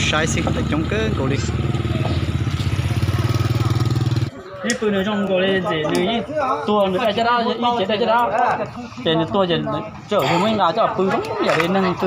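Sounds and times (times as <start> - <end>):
motorcycle engine running: 0.0 - 4.4.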